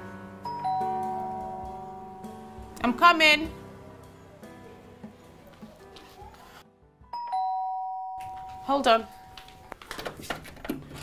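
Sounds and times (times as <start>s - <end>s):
two-tone doorbell chime: 0.4s - 2.8s, 7.1s - 9.4s.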